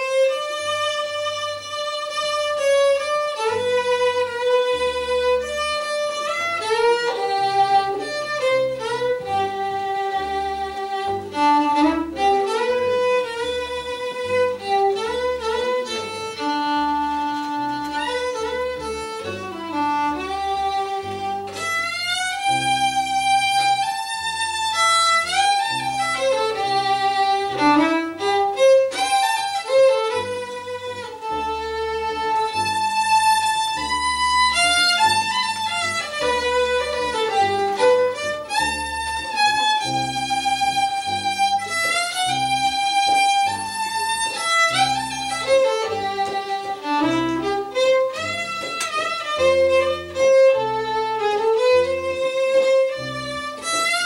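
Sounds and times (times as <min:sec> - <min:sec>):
fiddle melody: 0:00.0 - 0:54.0.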